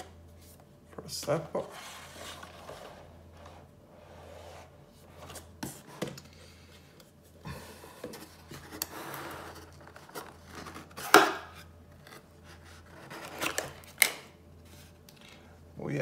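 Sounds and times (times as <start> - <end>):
cardboard rubbing and sliding: 1.6 - 6.0, 8.1 - 11.1.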